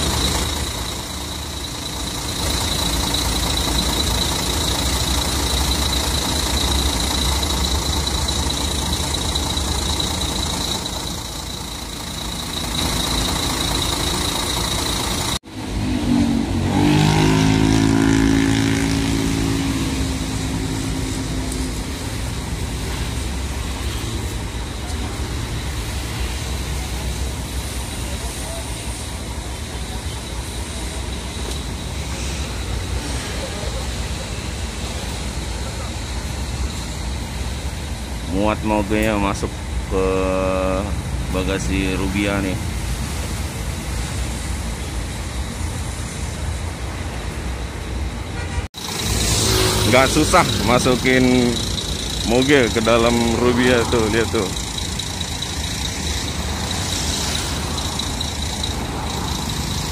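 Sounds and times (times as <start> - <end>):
diesel bus engine idling: 0.0 - 15.6, 19.2 - 59.9
roadside traffic: 0.0 - 59.9
thin high whine: 48.4 - 59.9.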